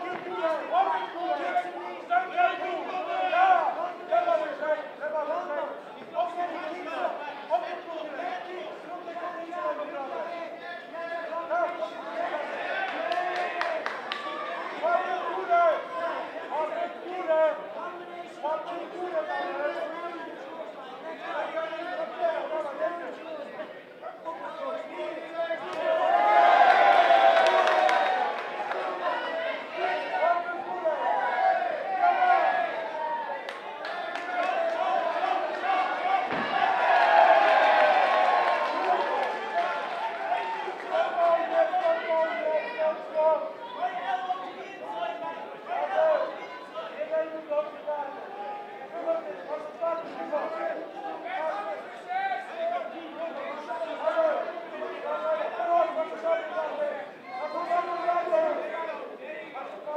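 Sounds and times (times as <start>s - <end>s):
spectators shouting and cheering: 0.0s - 17.2s, 24.1s - 59.9s.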